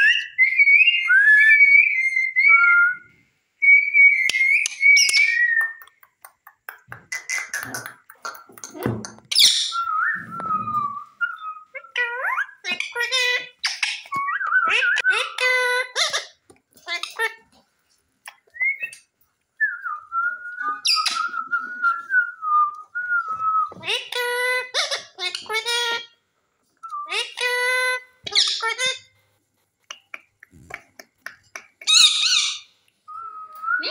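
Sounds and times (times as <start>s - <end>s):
parakeet screeching and whistling: 3.6s - 5.6s, 9.3s - 17.3s, 20.6s - 21.7s, 27.0s - 29.1s, 31.8s - 32.7s.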